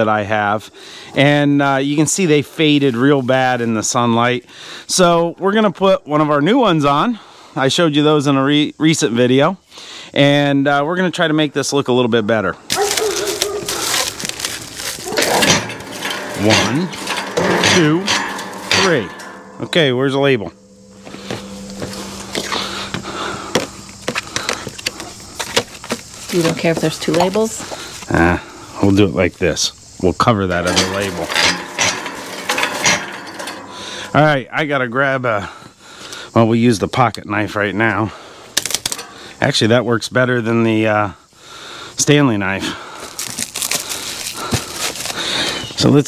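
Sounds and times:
faint steady hum: 12.4s - 36.4s
plastic film crinkling: 12.7s - 15.4s, 43.0s - 45.6s.

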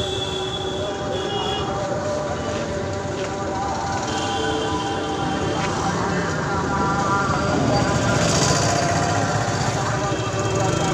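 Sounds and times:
street noise: 0.0s - 10.9s
indistinct voices: 0.7s - 10.9s.

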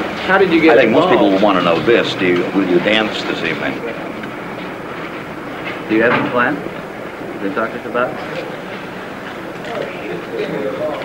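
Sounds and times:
low background rush: 0.0s - 11.0s
man speaking: 0.2s - 4.1s, 5.8s - 6.7s, 7.4s - 8.6s.

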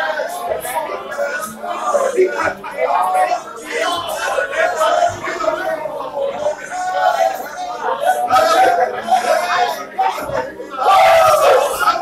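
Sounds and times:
crowd shouting together: 0.0s - 12.0s
long loud shout: 6.9s - 12.0s.

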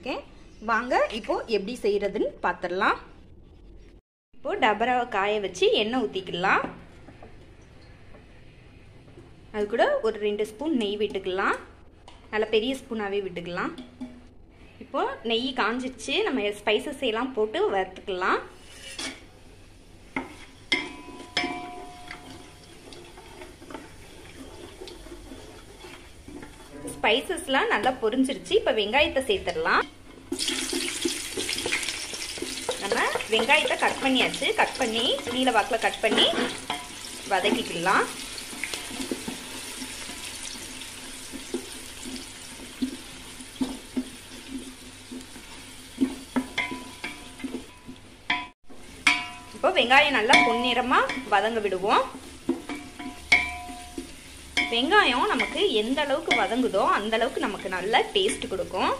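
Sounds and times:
onions sizzling in oil: 18.5s - 58.9s
wooden spatula stirring in pot: 20.0s - 58.9s
utensils knocking metal pot: 20.7s - 23.8s, 46.0s - 49.6s, 50.2s - 51.4s, 52.4s - 58.6s.

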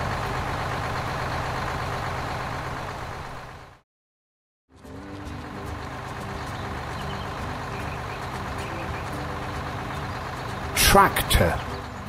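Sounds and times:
tractor engine running: 0.0s - 3.8s, 4.7s - 12.0s.

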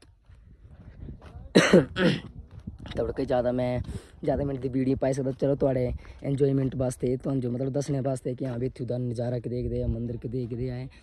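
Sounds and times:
person coughing: 1.5s - 2.3s.

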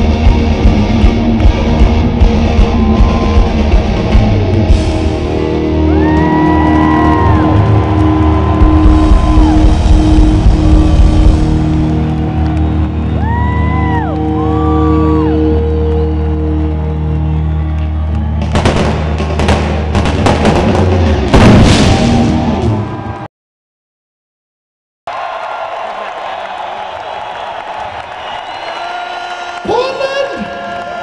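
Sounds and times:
rock band sustained chord: 0.0s - 13.8s
crowd cheering: 0.0s - 23.3s, 25.1s - 31.0s
whoops: 2.6s - 3.6s, 5.6s - 10.2s, 10.8s - 18.5s, 25.1s - 31.0s
loud crashes: 18.4s - 23.3s.

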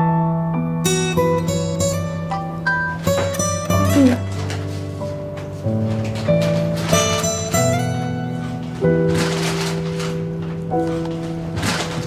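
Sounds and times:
plucked string tune: 0.9s - 5.0s.

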